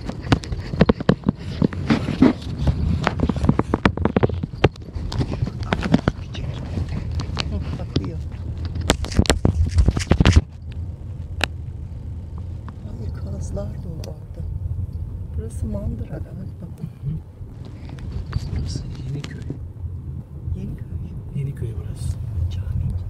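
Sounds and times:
knocks and rattles: 0.0 - 10.6
car rumbling on rough road: 0.0 - 23.0.

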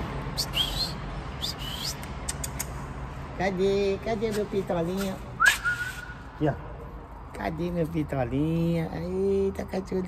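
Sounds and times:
man whistling: 0.4 - 2.0, 5.4 - 6.3.

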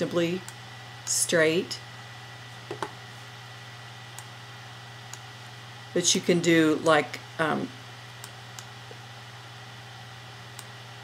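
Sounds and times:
low hum and hiss: 0.0 - 11.0.

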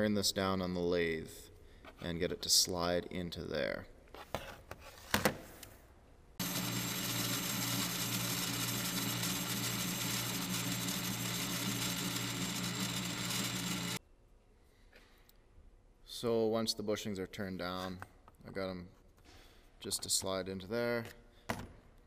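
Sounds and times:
lathe cutting metal: 6.4 - 14.0
lathe motor hum: 6.4 - 14.0.

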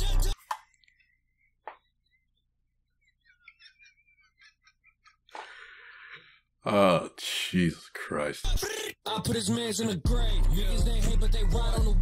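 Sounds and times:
man wheezing laughter: 3.0 - 6.3.

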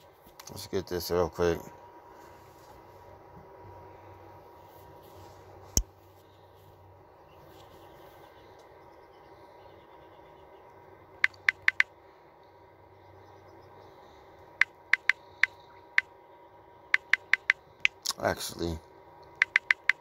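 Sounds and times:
faint steady hum: 0.0 - 20.0
phone keyboard clicks: 11.2 - 11.9, 14.6 - 15.6, 17.0 - 18.0, 19.3 - 20.0.

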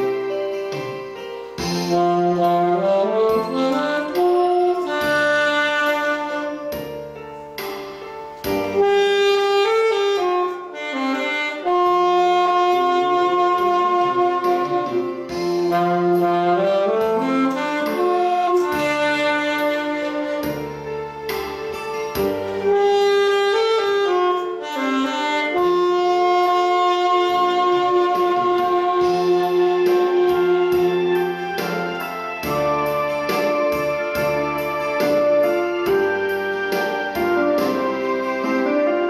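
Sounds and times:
saxophone slow melody: 0.0 - 39.0.

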